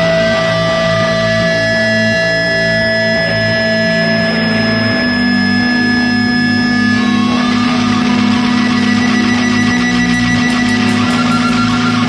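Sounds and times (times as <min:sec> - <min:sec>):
distorted electric guitar droning: 0:00.0 - 0:12.0.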